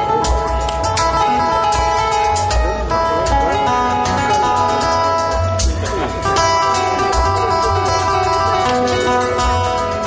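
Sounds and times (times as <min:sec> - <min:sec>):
acoustic guitar: 0:00.0 - 0:10.0
drums: 0:00.0 - 0:10.0
keyboard: 0:00.0 - 0:10.0.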